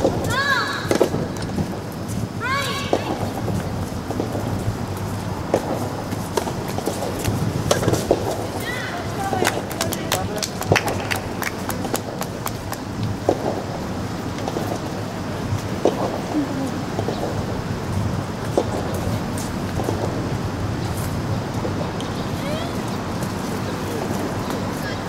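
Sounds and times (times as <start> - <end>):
outdoor background noise: 0.0 - 25.0
faint voices: 14.6 - 19.3, 21.5 - 25.0.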